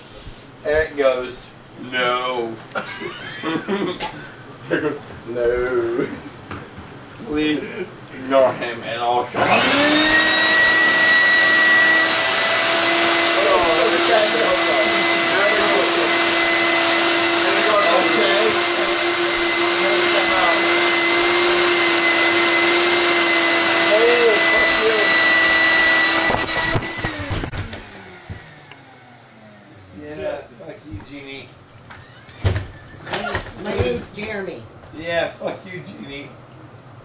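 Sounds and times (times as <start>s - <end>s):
shop vacuum motor whining: 9.0s - 33.9s.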